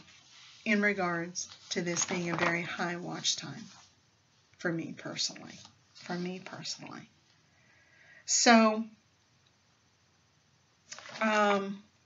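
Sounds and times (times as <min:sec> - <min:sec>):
woman speaking: 0:00.6 - 0:03.8, 0:04.6 - 0:07.1, 0:08.3 - 0:09.0, 0:11.0 - 0:11.9.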